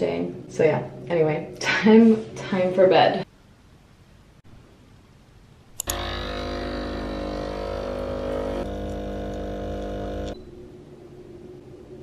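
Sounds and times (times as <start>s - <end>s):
espresso machine pump humming: 5.8s - 10.4s.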